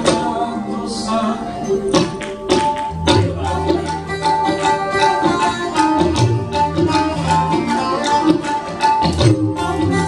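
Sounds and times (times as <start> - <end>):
harmonium and keyboard notes: 0.0 - 10.0
tabla strokes: 1.6 - 10.0.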